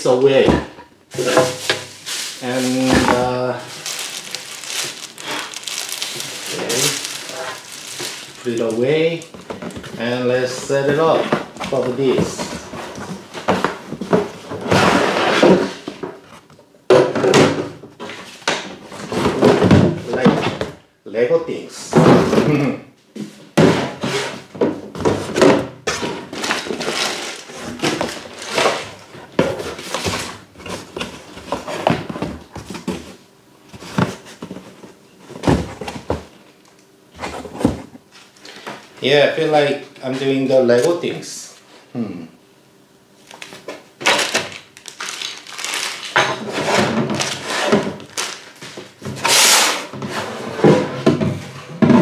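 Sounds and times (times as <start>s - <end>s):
cardboard flaps rustling: 1.2s - 16.5s, 23.6s - 36.4s.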